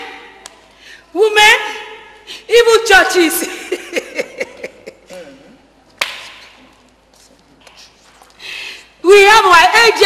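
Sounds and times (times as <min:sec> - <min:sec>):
sharp crack: 0:06.0 - 0:06.7.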